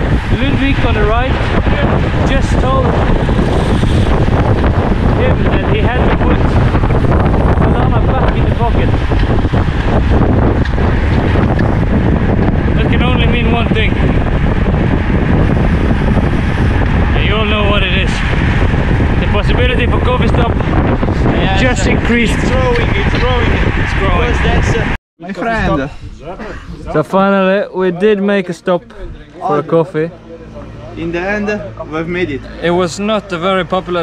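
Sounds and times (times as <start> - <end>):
voices: 0.0 - 3.6, 4.4 - 9.4, 12.6 - 16.2, 17.0 - 18.4, 19.1 - 34.0
wind buffeting microphone: 0.0 - 27.5.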